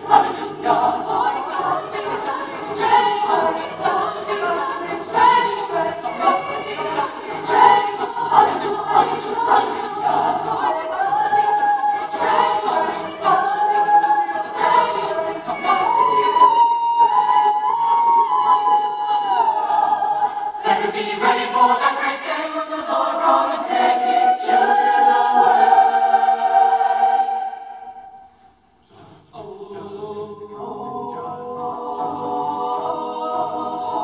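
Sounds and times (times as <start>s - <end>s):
mixed choir singing: 0.0s - 28.2s, 28.8s - 34.0s.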